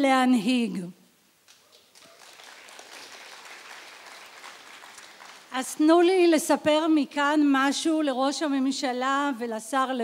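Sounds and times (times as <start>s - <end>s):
audience applauding: 1.5s - 5.6s.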